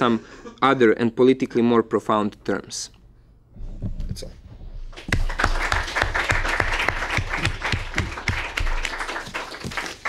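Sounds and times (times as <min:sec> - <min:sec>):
audience applauding: 0:05.0 - 0:10.0.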